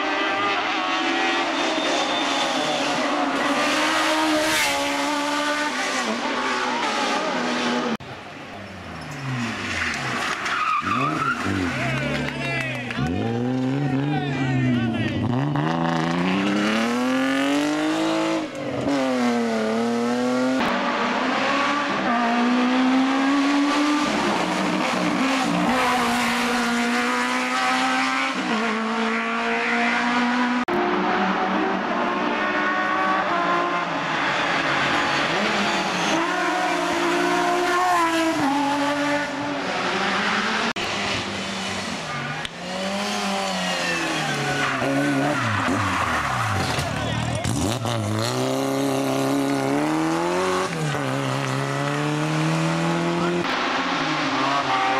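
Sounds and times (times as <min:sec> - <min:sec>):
race car engines at full throttle: 0:00.0 - 0:54.9
tyres squealing: 0:43.4 - 0:48.2.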